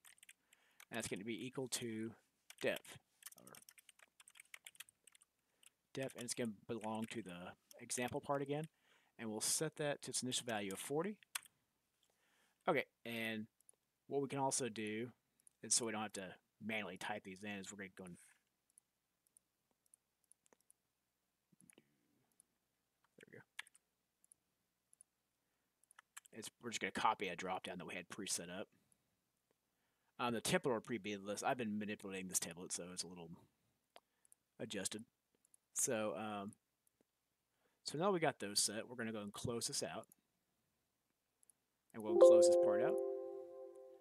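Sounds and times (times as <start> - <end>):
typing on computer keyboard: 0.0 - 0.9, 2.5 - 7.1
brief soft sound: 42.1 - 44.0.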